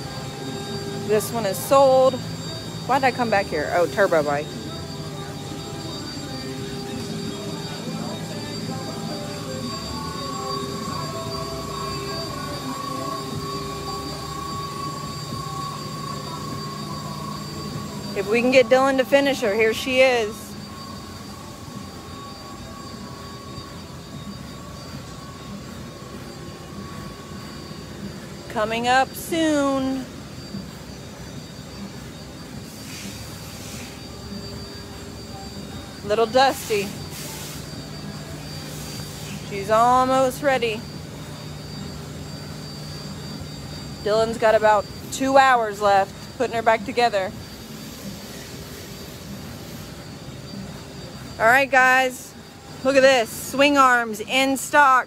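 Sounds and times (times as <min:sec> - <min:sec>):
faint high whine: 0:00.0 - 0:55.0
mechanical hum: 0:00.0 - 0:55.0.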